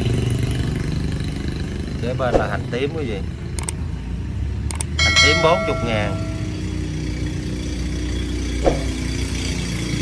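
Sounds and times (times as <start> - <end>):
low engine rumble: 4.7 - 10.0.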